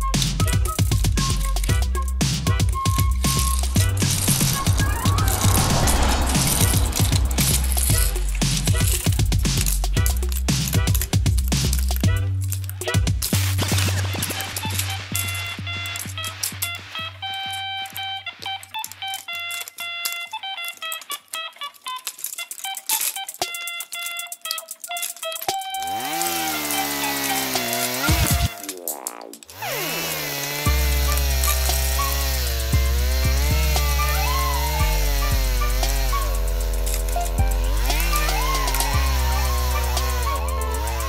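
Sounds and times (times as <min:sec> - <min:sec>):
heavy bass line: 0:03.1 - 0:09.7.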